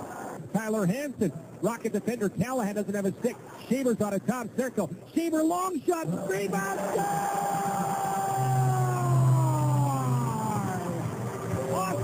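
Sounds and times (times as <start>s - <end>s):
long drawn-out shout: 6.5s - 12.0s.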